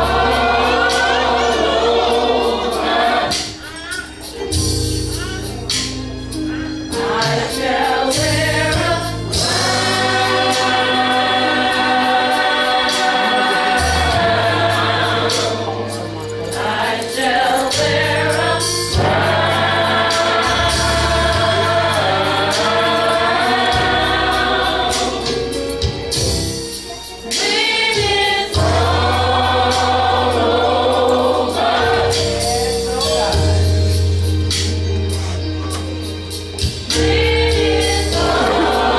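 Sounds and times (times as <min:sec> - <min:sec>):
gospel choir singing: 0:00.0 - 0:38.9
drum kit and cymbals: 0:02.5 - 0:16.0, 0:16.6 - 0:38.9.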